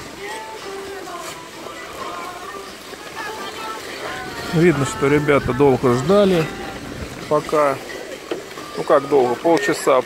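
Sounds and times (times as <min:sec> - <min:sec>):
music playing: 0:00.0 - 0:10.0
skaters' voices: 0:00.0 - 0:10.0.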